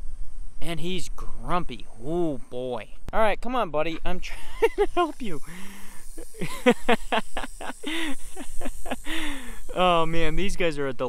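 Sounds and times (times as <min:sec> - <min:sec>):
man laughing: 0:03.9 - 0:10.2
snake hissing: 0:04.4 - 0:10.7.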